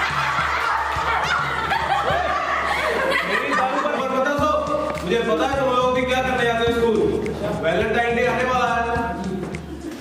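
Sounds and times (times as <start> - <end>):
young people laughing: 0.0 - 4.9.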